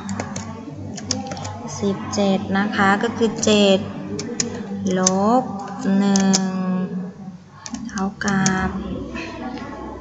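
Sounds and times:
keyboard keystrokes clicking: 0:04.2 - 0:06.5.

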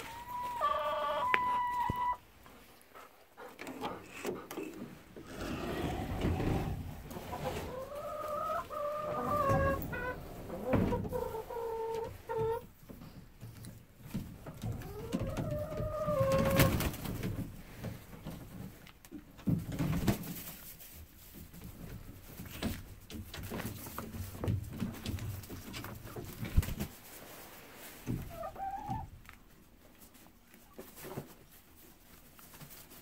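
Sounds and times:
wings flapping: 0:16.1 - 0:17.3, 0:26.4 - 0:26.9.

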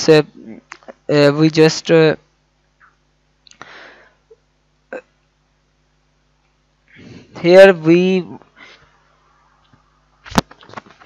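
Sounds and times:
man saying uh: 0:07.3 - 0:08.4.

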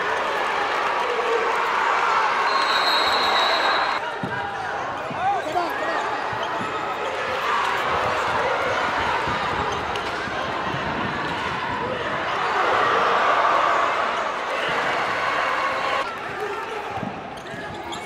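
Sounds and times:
crowd voices: 0:00.0 - 0:18.0
high whistle blast: 0:02.5 - 0:04.0.

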